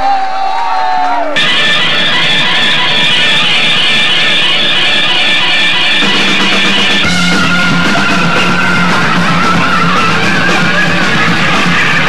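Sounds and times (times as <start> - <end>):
drums: 0.0 - 12.0
sustained high note: 1.4 - 9.6
distorted electric guitar: 1.4 - 12.0.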